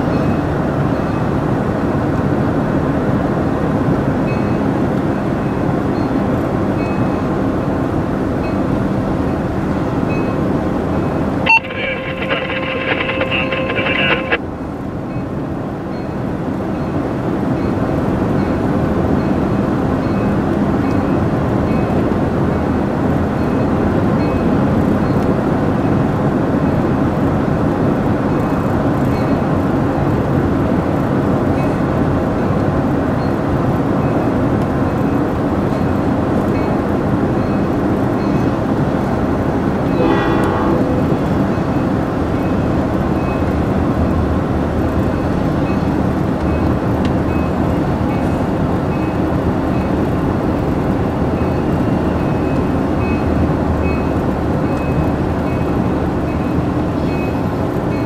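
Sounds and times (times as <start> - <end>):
horn chord of steady tones: 11.5 - 14.4, 40.0 - 42.2.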